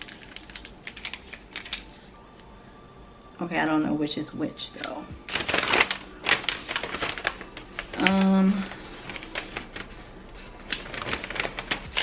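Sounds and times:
paper leaflet crinkling: 0.0s - 1.9s, 5.2s - 12.0s.

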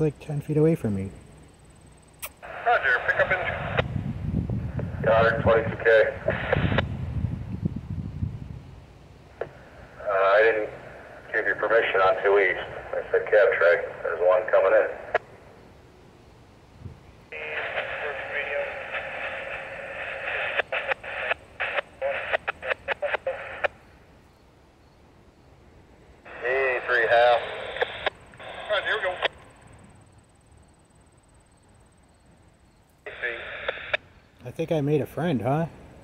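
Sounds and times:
radio static: 2.3s - 4.0s, 4.6s - 7.0s, 9.3s - 15.4s, 17.3s - 23.8s, 26.2s - 29.9s, 33.0s - 36.0s
voice over radio: 2.4s - 3.9s, 4.8s - 6.8s, 9.4s - 15.2s, 17.3s - 23.7s, 26.3s - 29.4s, 33.1s - 35.8s.

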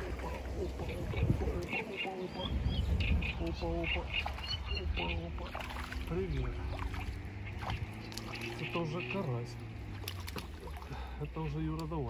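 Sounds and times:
faint low voices: 0.0s - 7.8s
birds chirping: 0.0s - 12.0s.

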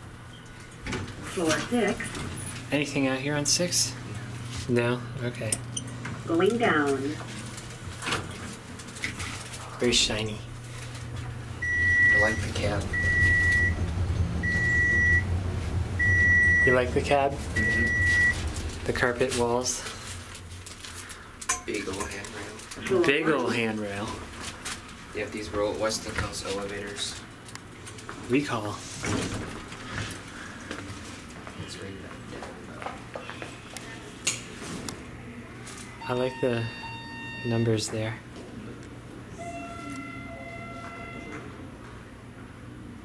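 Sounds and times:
elevator cab hum: 10.4s - 19.6s, 35.3s - 37.8s, 39.1s - 43.0s
elevator signal beeping: 11.6s - 18.5s, 36.0s - 37.9s, 39.4s - 41.6s.

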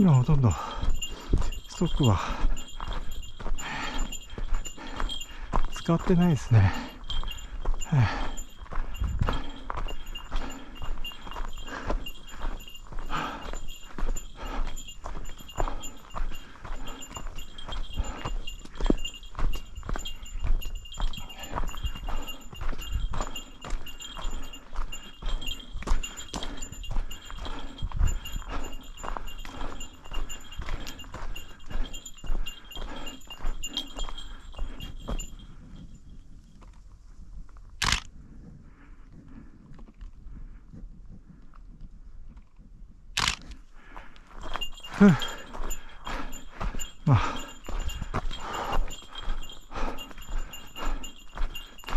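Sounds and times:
footsteps crunching on gravel: 0.0s - 35.4s, 44.0s - 51.9s
small bell jingling: 0.0s - 36.6s, 43.8s - 51.9s.

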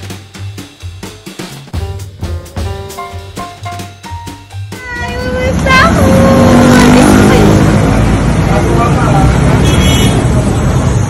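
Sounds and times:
vehicle engines running: 4.7s - 11.0s
people talking: 4.8s - 7.7s, 8.5s - 9.4s.

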